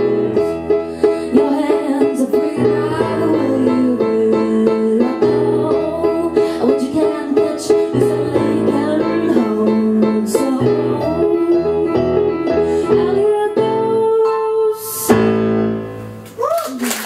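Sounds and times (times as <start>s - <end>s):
keyboard playing piano chords: 0.0s - 16.4s.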